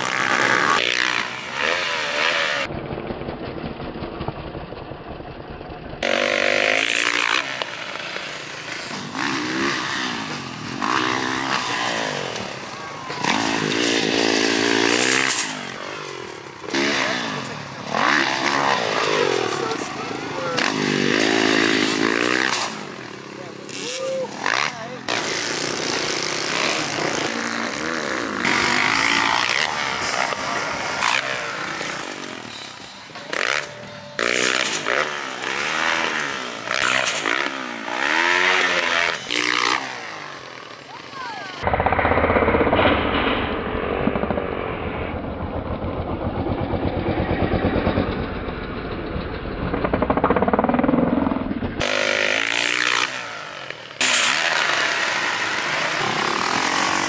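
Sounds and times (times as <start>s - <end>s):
dirt bike engines revving: 0.0s - 4.5s, 5.2s - 42.1s, 49.5s - 57.0s
engine with rapid even firing: 0.0s - 40.9s, 41.6s - 57.0s.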